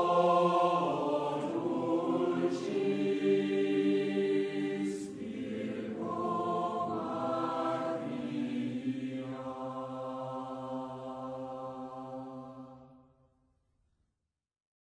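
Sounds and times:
choir singing slow chant: 0.0s - 13.1s.

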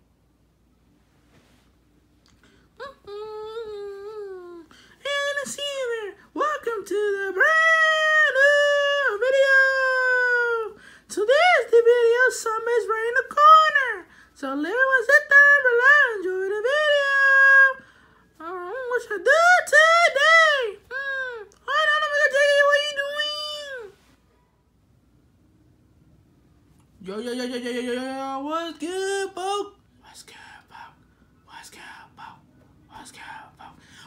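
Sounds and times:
faint room noise: 0.0s - 34.0s
squeaky voice humming: 2.8s - 4.7s.

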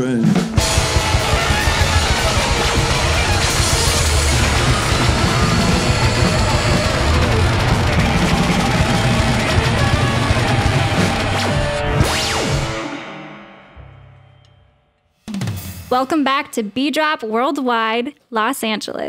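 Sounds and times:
live rock band playing: 0.0s - 13.7s.

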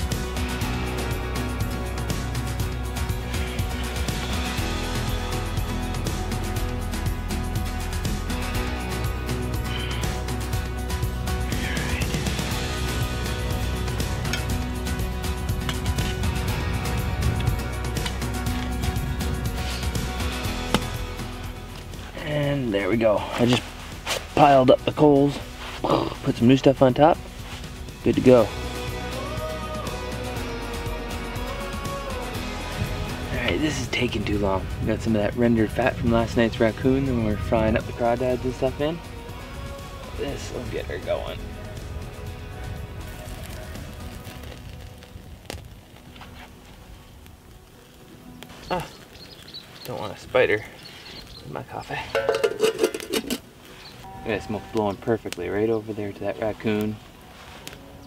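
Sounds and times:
background music held tones: 0.0s - 58.0s
crackling campfire: 0.0s - 58.0s.

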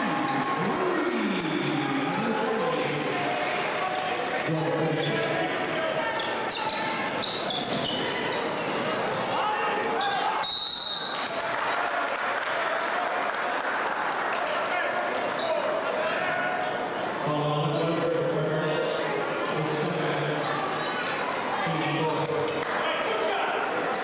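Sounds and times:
crowd voices: 0.0s - 24.0s
referee's whistle: 10.0s - 11.4s.

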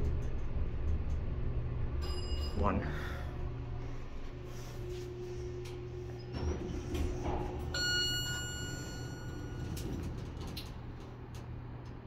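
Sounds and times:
steady low hum: 0.0s - 12.0s
elevator arrival chime: 2.0s - 3.3s, 6.2s - 10.7s
elevator doors sliding open: 5.4s - 11.8s.

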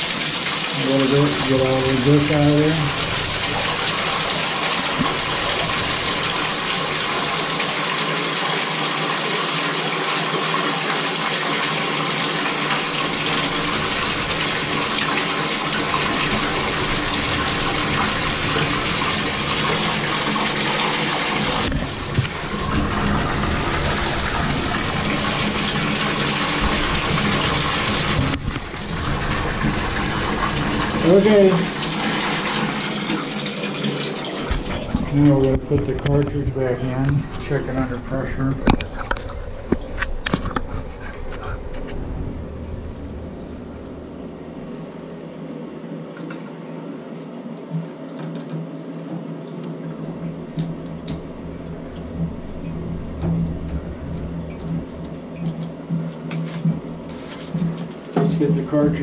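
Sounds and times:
water gushing into bathtub: 0.0s - 46.4s, 49.2s - 59.0s.

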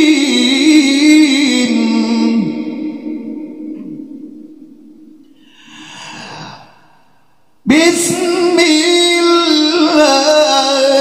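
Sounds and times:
man reciting melodically: 0.0s - 6.8s, 7.4s - 11.0s
heavy breath into microphone: 5.4s - 7.3s.

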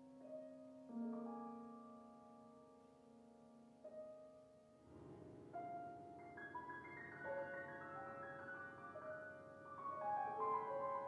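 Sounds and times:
soft high piano notes: 3.8s - 11.0s.

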